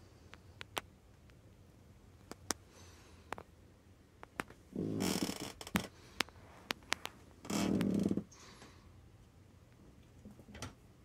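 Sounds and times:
small sharp taps and clicks: 0:04.2 - 0:04.6.

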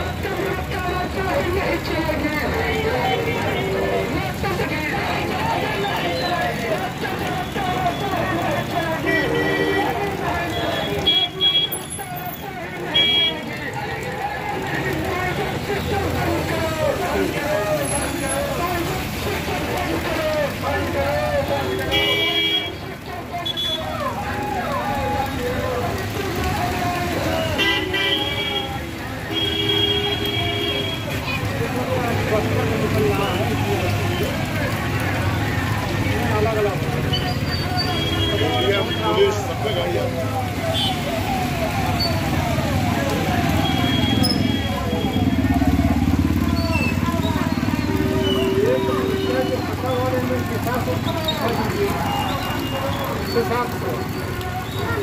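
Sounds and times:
many people's voices: 0:00.0 - 0:55.0
traffic passing on wet road: 0:00.0 - 0:55.0
vehicle horns tooting: 0:07.3 - 0:12.1, 0:12.8 - 0:13.5, 0:21.4 - 0:23.9, 0:27.1 - 0:31.3, 0:37.0 - 0:40.0, 0:40.7 - 0:41.2, 0:43.5 - 0:46.9, 0:48.0 - 0:50.0
motorcycle and car engines: 0:30.5 - 0:38.7, 0:39.4 - 0:55.0.

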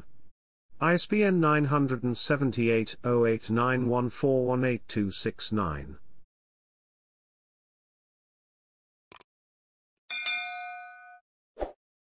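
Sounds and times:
bell ding: 0:10.1 - 0:11.2.

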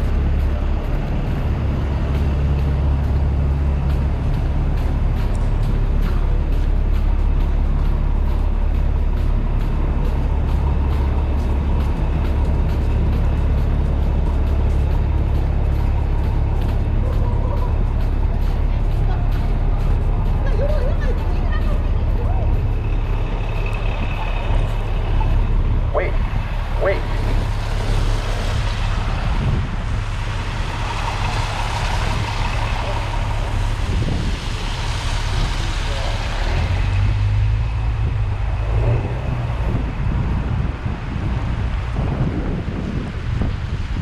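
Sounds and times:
engine rumble: 0:00.0 - 0:44.0
tyre hiss on wet road: 0:27.1 - 0:38.9.

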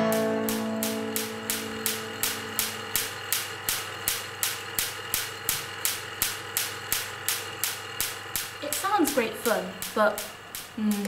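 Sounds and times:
guitar music: 0:00.0 - 0:03.0
sharp clicks: 0:00.4 - 0:11.0.

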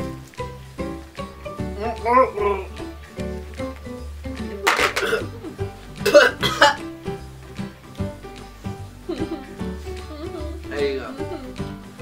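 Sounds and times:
background music: 0:00.0 - 0:12.0
person coughing: 0:04.8 - 0:05.4, 0:06.1 - 0:06.8.

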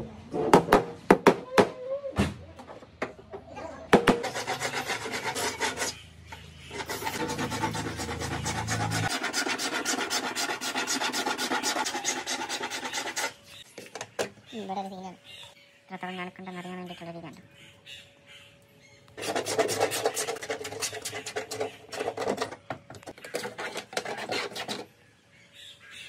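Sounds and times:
scratchy tool strokes: 0:04.2 - 0:06.0, 0:06.7 - 0:13.8, 0:19.2 - 0:22.5, 0:23.2 - 0:24.9.

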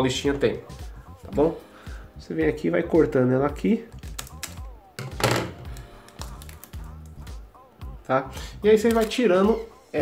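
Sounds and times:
scissors cutting tape: 0:04.0 - 0:04.7, 0:05.7 - 0:07.2.

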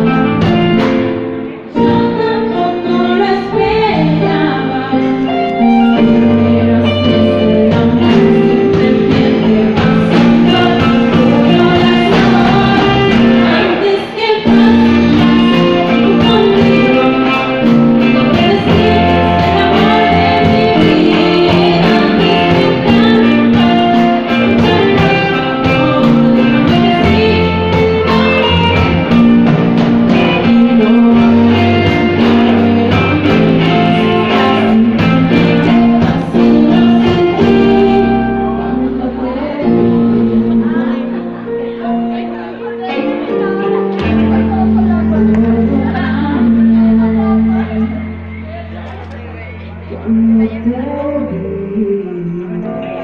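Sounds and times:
drum kit steady beat: 0:00.0 - 0:02.2, 0:05.6 - 0:39.1
bass guitar: 0:00.0 - 0:53.0
electric and acoustic guitars: 0:00.0 - 0:53.0
live band playing pop-rock ballad: 0:00.0 - 0:53.0
woman singing: 0:01.7 - 0:29.4, 0:30.1 - 0:48.7, 0:49.3 - 0:53.0.

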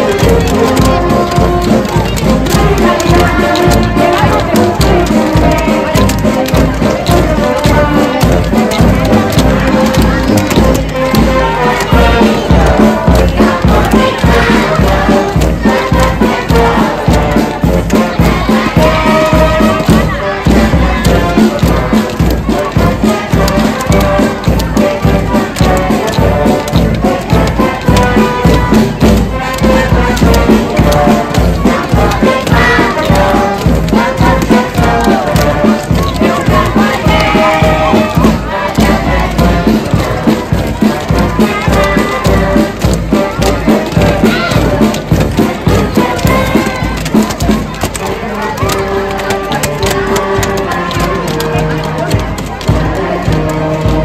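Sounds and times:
brass band playing a march: 0:00.0 - 0:54.0
children's voices: 0:00.0 - 0:54.0
crowd noise: 0:00.0 - 0:54.0.

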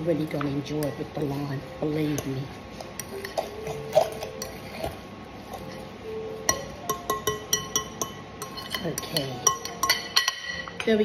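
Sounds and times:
fork tapping and scraping glass bowl: 0:06.5 - 0:10.6.

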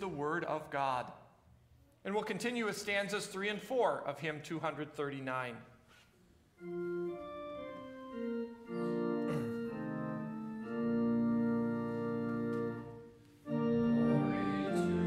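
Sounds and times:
church organ playing chords: 0:06.6 - 0:15.0.

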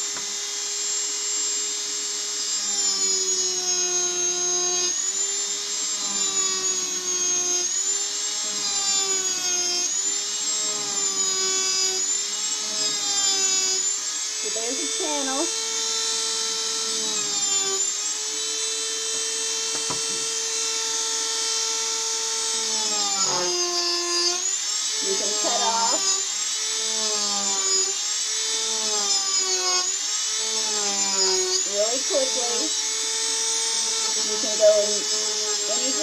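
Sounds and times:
burr cutting wood: 0:00.0 - 0:36.0
rotary tool high whine: 0:00.0 - 0:36.0.

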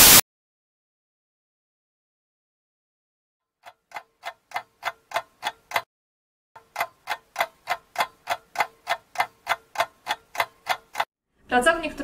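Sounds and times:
clock ticking: 0:03.6 - 0:05.9, 0:06.6 - 0:11.1.

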